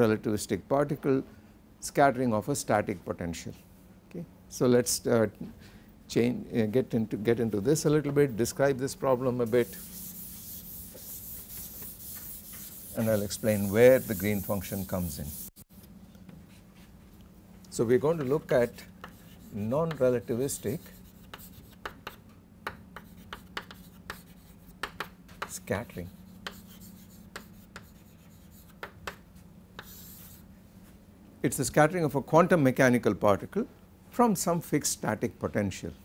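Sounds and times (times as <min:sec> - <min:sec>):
chalk scraping stroke: 0:09.4 - 0:15.6, 0:18.1 - 0:22.2, 0:23.0 - 0:24.8, 0:25.4 - 0:28.9, 0:29.8 - 0:30.5
chalk tapping and scratching: 0:09.5 - 0:15.6, 0:18.0 - 0:30.4
duster scrubbing a chalkboard: 0:09.5 - 0:15.6, 0:29.8 - 0:30.4.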